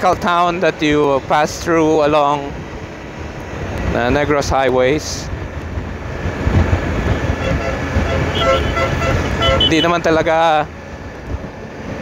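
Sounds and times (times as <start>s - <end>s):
wind rush on microphone: 0.4s - 12.0s
motorcycle engine drone: 2.5s - 12.0s.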